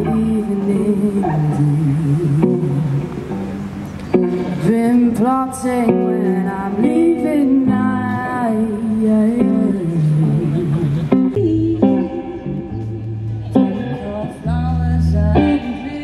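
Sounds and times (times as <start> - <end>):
woman singing: 0.0 - 3.0, 4.5 - 16.0
bass guitar: 0.0 - 16.0
electric guitar: 0.0 - 16.0.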